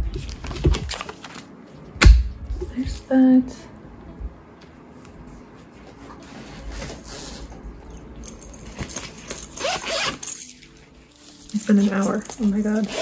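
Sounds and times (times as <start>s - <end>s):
plastic pages rustling and clicking: 0.0s - 1.5s.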